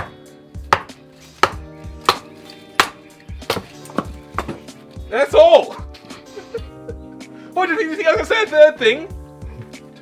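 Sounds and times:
axe splitting firewood: 0.0s - 4.7s.

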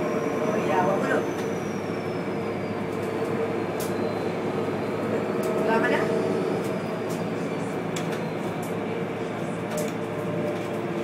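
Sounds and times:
bus engine running: 0.0s - 11.0s.

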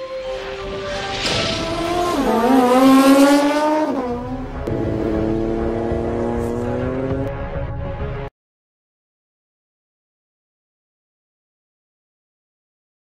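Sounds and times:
racing engine accelerating: 0.3s - 7.3s.

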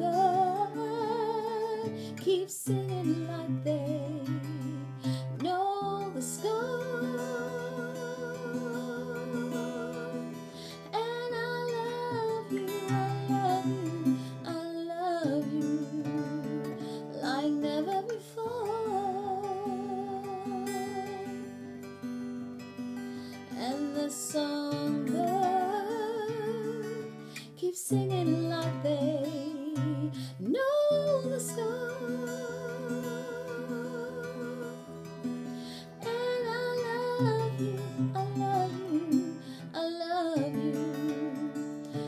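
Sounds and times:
woman singing a slow ballad: 0.0s - 21.6s, 23.2s - 42.0s
acoustic guitar: 0.0s - 42.0s.

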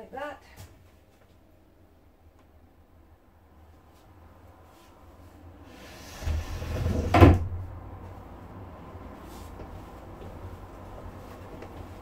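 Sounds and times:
wooden bed frame sliding: 5.6s - 7.6s.

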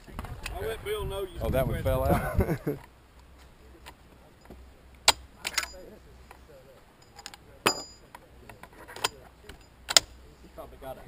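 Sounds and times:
metal cartridges clinking on wood: 5.4s - 5.9s, 7.0s - 8.1s.

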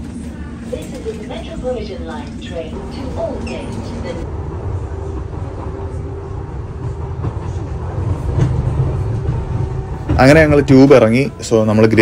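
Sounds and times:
train rumbling inside carriage: 0.0s - 12.0s.

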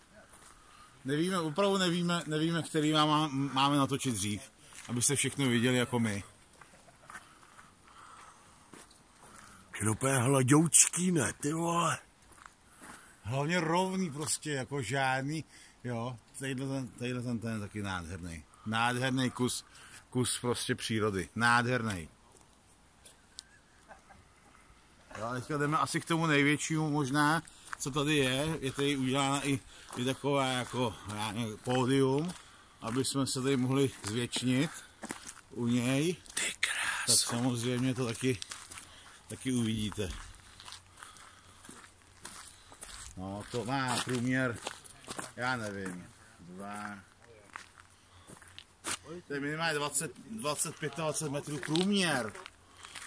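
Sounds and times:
faint outdoor background: 0.0s - 53.0s
soft footsteps: 4.1s - 10.0s, 12.1s - 14.5s, 21.9s - 49.1s.

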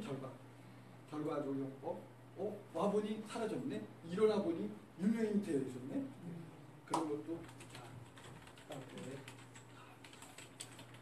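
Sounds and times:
steady low hum: 0.0s - 11.0s
faint rapid clicking: 6.9s - 11.0s.

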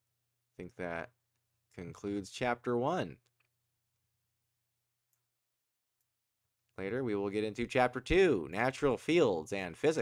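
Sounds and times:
person speaking: 0.6s - 3.4s.

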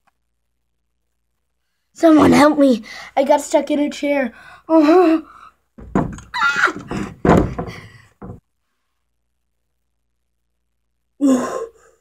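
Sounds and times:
metal chair thumping and clattering: 5.8s - 8.4s.

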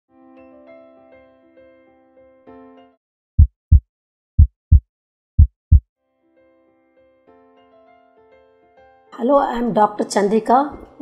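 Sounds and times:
heartbeat thumps: 3.4s - 3.8s, 4.4s - 4.8s, 5.4s - 5.8s.

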